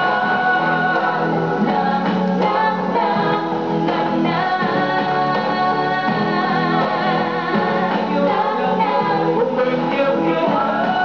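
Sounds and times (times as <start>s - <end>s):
backing music: 0.0s - 11.0s
man and woman singing duet: 0.0s - 11.0s.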